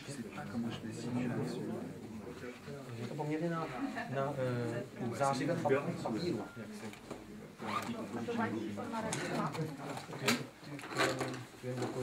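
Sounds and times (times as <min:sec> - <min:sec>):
men talking quietly: 0:00.0 - 0:12.0.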